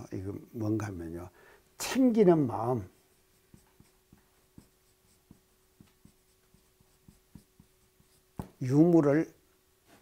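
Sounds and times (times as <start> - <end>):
marker pen writing on whiteboard: 2.5 - 8.7.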